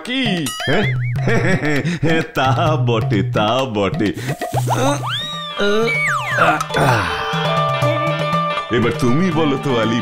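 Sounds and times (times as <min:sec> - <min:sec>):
light background music: 0:00.0 - 0:10.0
cartoon whistle swooping: 0:04.6 - 0:06.7.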